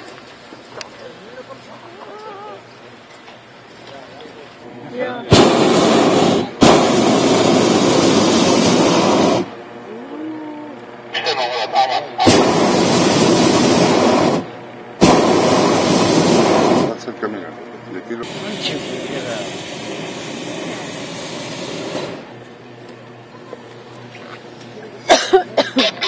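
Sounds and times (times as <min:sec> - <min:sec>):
propane burner blasts: 0:00.0 - 0:26.0.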